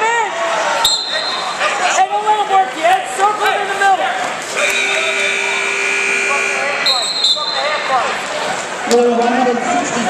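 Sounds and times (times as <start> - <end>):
scoreboard buzzer: 4.6 - 7.6.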